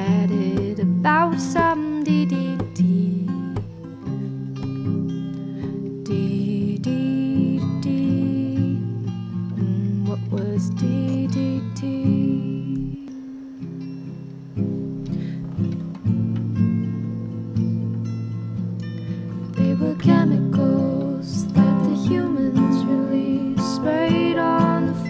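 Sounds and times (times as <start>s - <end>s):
acoustic guitar playing: 0.0s - 25.0s.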